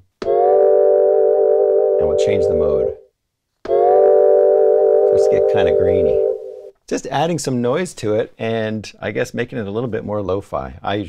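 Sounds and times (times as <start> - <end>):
sustained synth note: 3.7 - 6.7.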